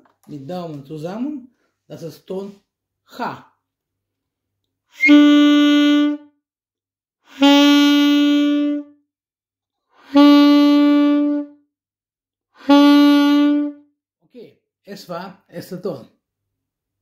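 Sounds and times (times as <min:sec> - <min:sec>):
saxophone held notes: 0:05.0 - 0:06.3, 0:07.3 - 0:09.0, 0:10.0 - 0:11.6, 0:12.6 - 0:13.8.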